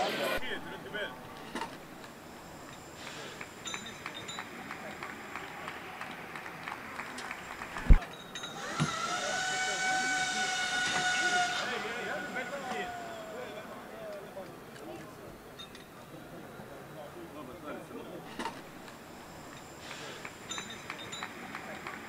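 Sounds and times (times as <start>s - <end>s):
low background murmur: 0.0s - 22.0s.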